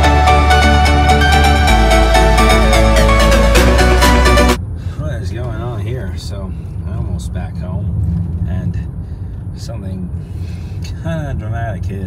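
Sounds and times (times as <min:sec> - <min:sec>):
electronic background music: 0:00.0 - 0:04.6
car road and engine noise: 0:00.0 - 0:12.0.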